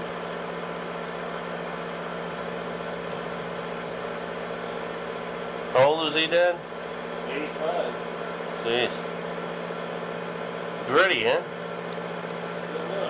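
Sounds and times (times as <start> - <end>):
film projector humming: 0.0 - 13.0.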